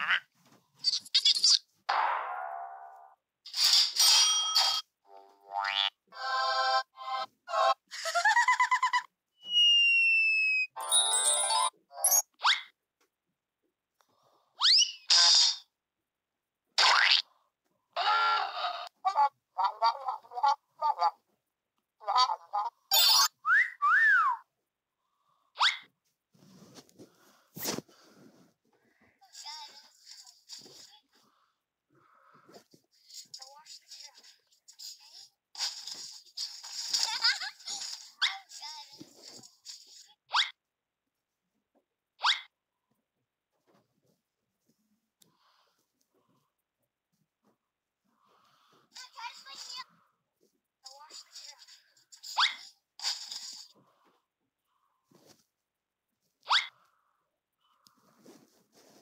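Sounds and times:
cartoon laugh: 7.9 - 9.1
cartoon whistles: 9.4 - 10.8, 23.4 - 24.4.

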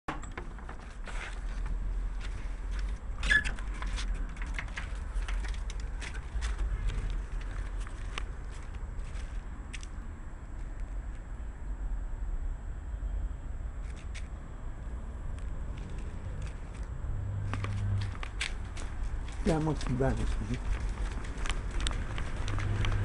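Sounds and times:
light footsteps: 0.7 - 10.8, 15.7 - 23.0.

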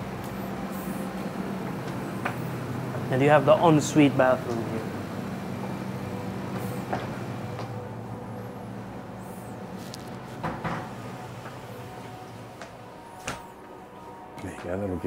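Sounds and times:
air conditioner hum: 0.0 - 15.0.

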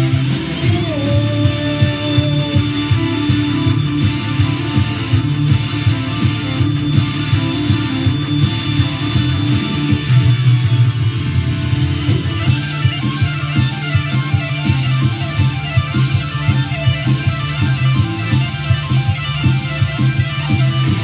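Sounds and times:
electric guitar played fast: 0.0 - 21.0
rock band backing track: 0.0 - 21.0.

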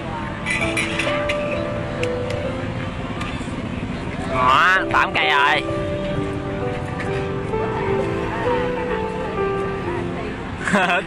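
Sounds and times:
background music with held notes: 0.0 - 11.0
street and crowd noise: 0.0 - 11.0.

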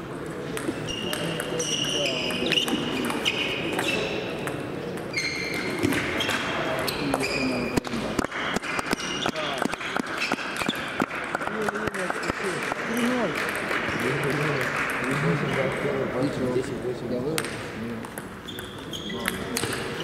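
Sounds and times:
table tennis ball clicking: 17.4 - 20.0.

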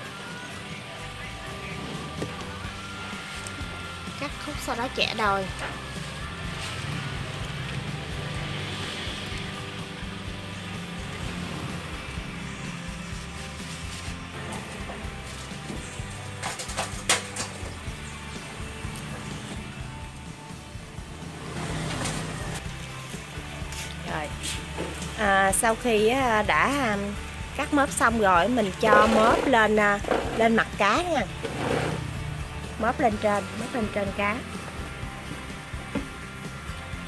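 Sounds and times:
background music with low notes: 0.0 - 37.0.

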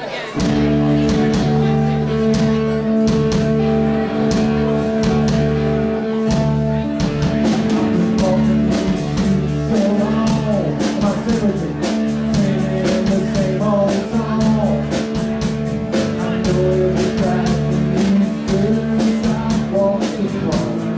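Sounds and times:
drum kit beat: 0.4 - 20.9
sustained guitar chords: 0.4 - 20.9.

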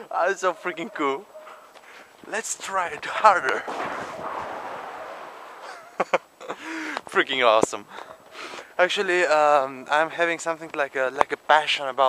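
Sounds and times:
rush of noise: 3.7 - 6.0
man laughing breathily: 5.6 - 7.0.

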